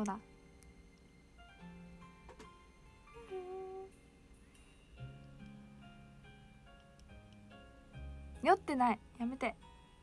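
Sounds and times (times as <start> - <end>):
woman humming: 3.1 - 4.0.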